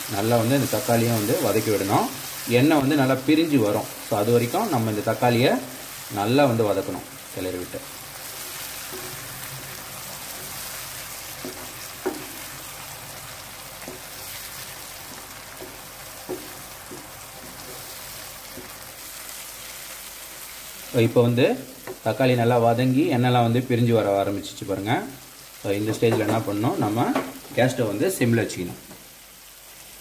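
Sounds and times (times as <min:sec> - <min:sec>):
onions sizzling in oil: 0:00.0 - 0:30.0
spatula knocking against pan: 0:11.4 - 0:12.4, 0:13.8 - 0:14.2, 0:15.1 - 0:17.9.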